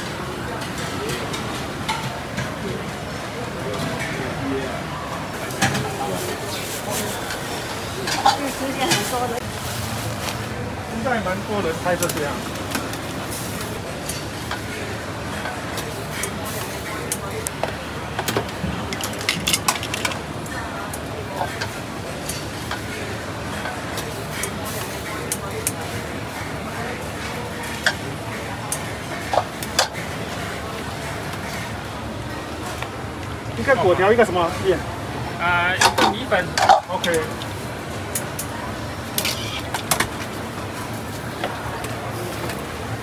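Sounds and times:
background chatter: 0:00.0 - 0:43.0.

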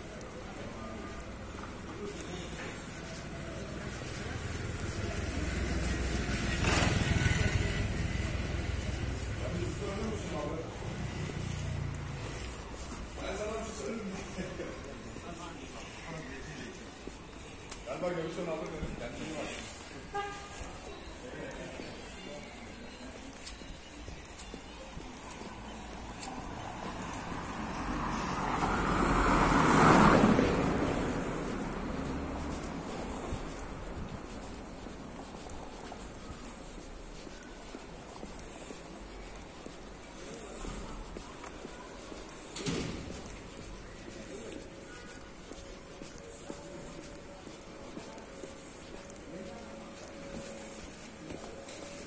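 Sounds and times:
car passing on brick street: 0:00.0 - 0:52.0
people's voices: 0:00.0 - 0:52.0.

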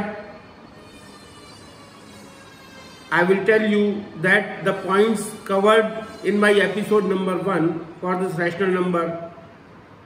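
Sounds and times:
faint hum: 0:00.0 - 0:10.0
man speaking: 0:03.1 - 0:09.4.

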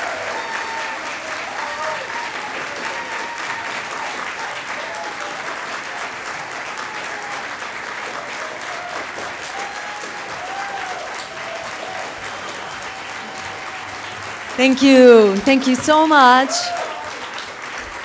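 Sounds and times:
shouts and whoops of cheering: 0:00.0 - 0:05.4, 0:06.6 - 0:07.5, 0:08.3 - 0:14.4, 0:16.0 - 0:17.3
audience clapping: 0:00.0 - 0:18.0.

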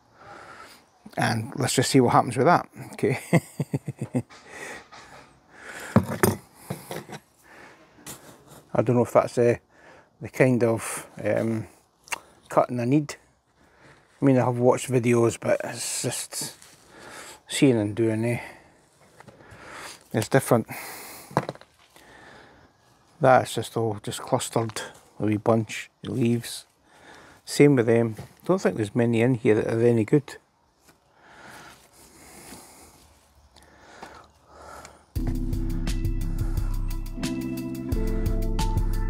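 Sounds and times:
rustling of leafy cuttings: 0:13.7 - 0:17.2.

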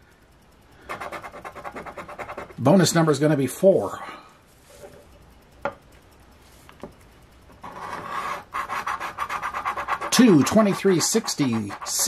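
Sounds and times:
scratcher rasping on ticket: 0:07.7 - 0:12.0.

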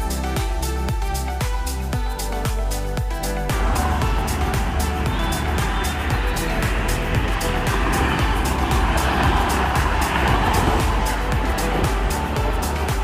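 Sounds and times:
background music with steady beat: 0:00.0 - 0:13.0
motorway traffic rushing past: 0:03.5 - 0:13.0.

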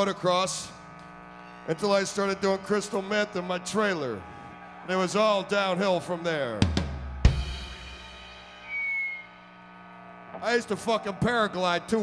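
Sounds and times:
short high whistle-like tone: 0:08.6 - 0:09.4.

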